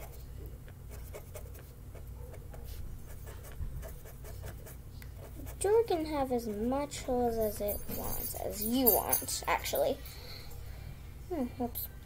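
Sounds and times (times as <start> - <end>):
marker scratching on paper: 0.0 - 0.2, 0.9 - 5.8.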